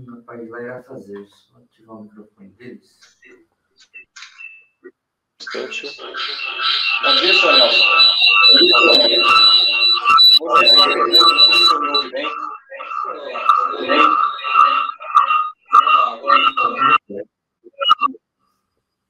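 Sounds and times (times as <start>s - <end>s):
garbled man's voice over remote link: 0.0s - 4.4s, 5.4s - 18.1s
steady tones: 5.5s - 17.0s.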